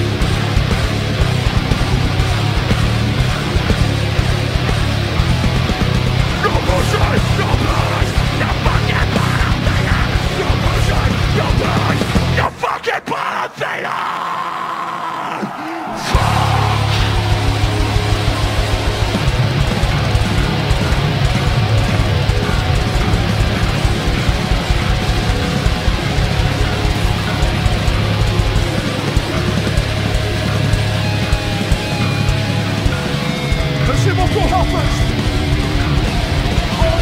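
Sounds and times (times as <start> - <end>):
rapid heavy drumming: 0.0 - 12.5, 16.0 - 37.0
bass guitar: 0.0 - 12.6, 16.0 - 37.0
distorted guitars: 0.0 - 37.0.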